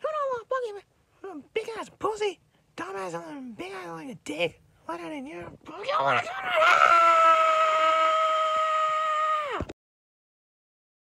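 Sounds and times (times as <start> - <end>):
man yelling high-pitched: 5.7 - 7.9.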